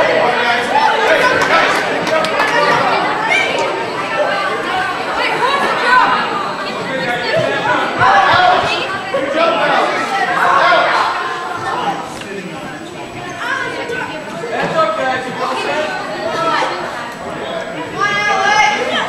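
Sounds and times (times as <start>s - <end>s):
murmur of overlapping chatter: 0.0s - 19.0s.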